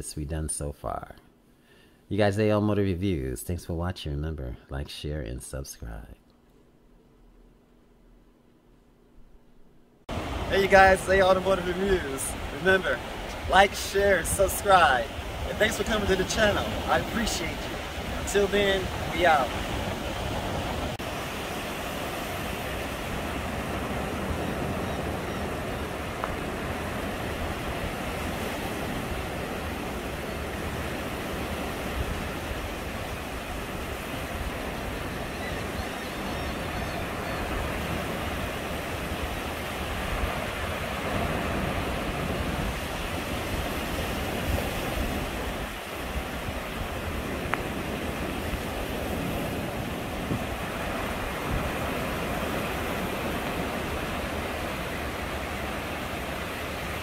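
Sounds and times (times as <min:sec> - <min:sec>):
wind buffeting microphone: 0:10.1 - 0:56.4
small waves breaking on shore: 0:10.1 - 0:57.0.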